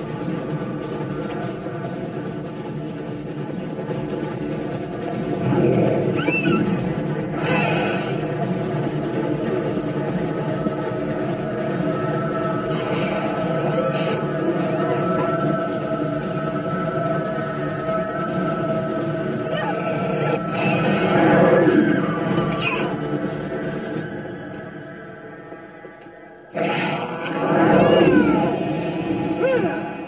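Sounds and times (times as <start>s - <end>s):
droning horror score: 0.0s - 30.0s
wailing cries and screams: 5.4s - 8.5s, 11.3s - 25.4s, 26.5s - 30.0s.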